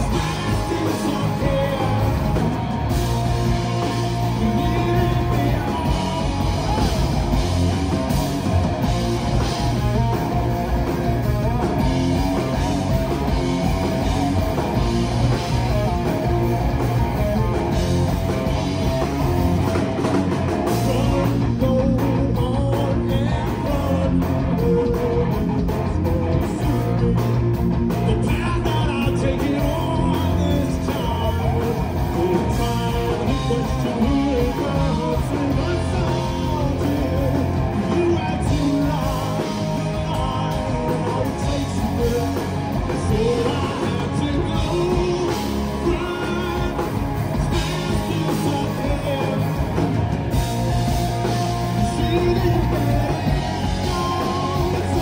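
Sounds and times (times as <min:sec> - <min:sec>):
drum kit: 0:00.0 - 0:55.0
electric bass: 0:00.0 - 0:55.0
electric guitars: 0:00.0 - 0:55.0.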